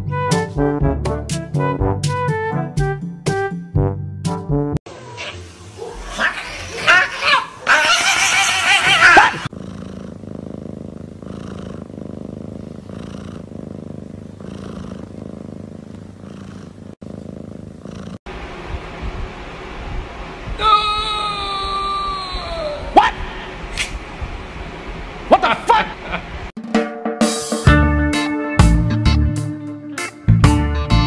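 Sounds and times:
loud wavering cries: 0:06.0 - 0:09.5, 0:20.6 - 0:23.0
cat purring: 0:09.4 - 0:18.3.

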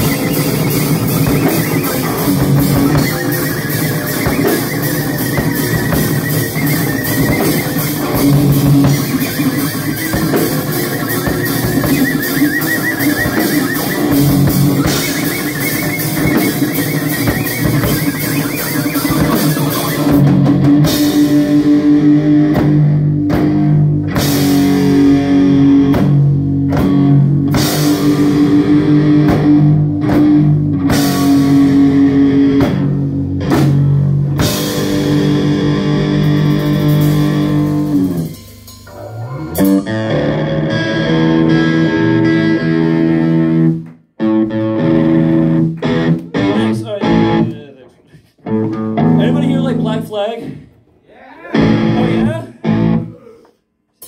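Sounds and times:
drum kit with cymbal crashes: 0:00.0 - 0:32.0, 0:32.6 - 0:40.2
electric guitars: 0:00.0 - 0:50.6, 0:51.4 - 0:53.2.

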